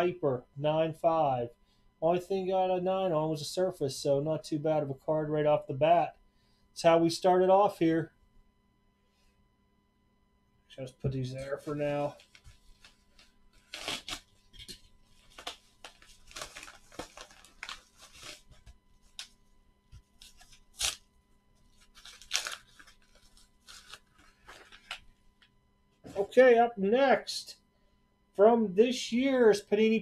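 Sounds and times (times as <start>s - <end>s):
paper mailer tearing and crinkling: 11.8s - 19.3s, 20.1s - 21.1s, 21.7s - 25.1s.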